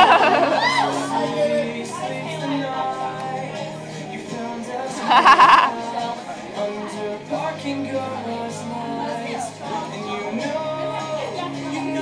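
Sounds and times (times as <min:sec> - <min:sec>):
high wavering vocal cry: 0:00.0 - 0:02.0
music in a large hall: 0:00.0 - 0:12.0.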